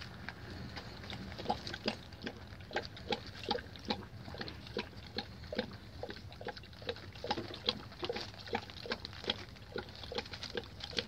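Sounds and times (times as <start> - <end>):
puppies chewing wetly: 0.0 - 11.0.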